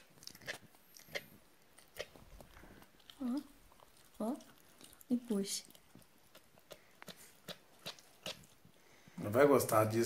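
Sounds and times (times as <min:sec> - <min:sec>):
teeth clicks: 0:00.0 - 0:08.6
dog chewing on a toy: 0:00.0 - 0:08.8.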